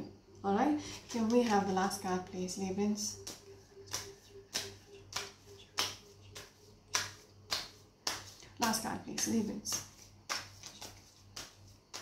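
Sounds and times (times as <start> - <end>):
cards being shuffled: 9.3 - 12.0.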